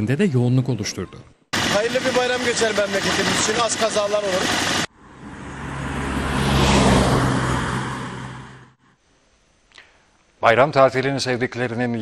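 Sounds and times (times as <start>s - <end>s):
vehicle passing by: 4.2s - 8.8s.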